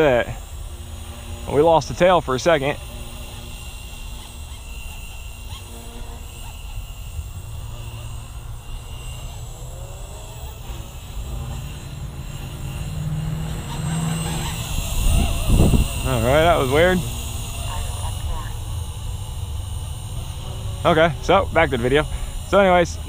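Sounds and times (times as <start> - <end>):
rc helicopter motor and rotor whine: 0.0 - 23.0
wind rumble on microphone: 14.7 - 16.9.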